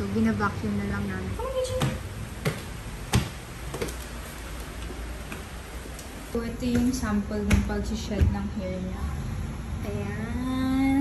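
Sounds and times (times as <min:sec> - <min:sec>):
flip-flop footsteps on wooden stairs: 0:01.7 - 0:06.0.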